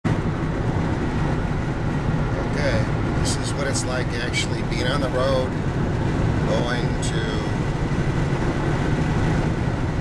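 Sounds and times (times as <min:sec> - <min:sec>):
car cruising interior rumble: 0:00.0 - 0:10.0.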